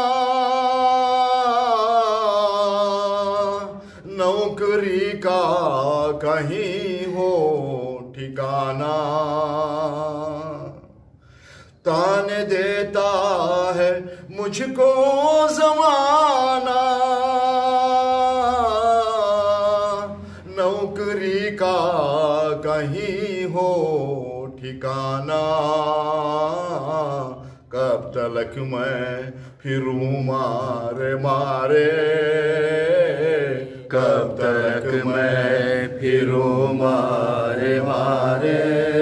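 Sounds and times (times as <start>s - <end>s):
man singing with vibrato: 0.0s - 10.8s, 11.8s - 39.0s
man taking a breath: 11.1s - 11.8s.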